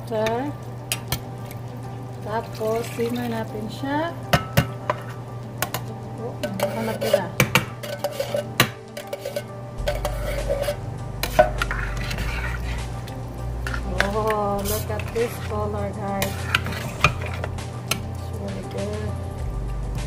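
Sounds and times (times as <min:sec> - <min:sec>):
utensils scraping metal pot: 0:00.2 - 0:03.8, 0:04.4 - 0:19.2
tin can tapping rim: 0:04.3 - 0:12.2
low hum: 0:09.5 - 0:20.0.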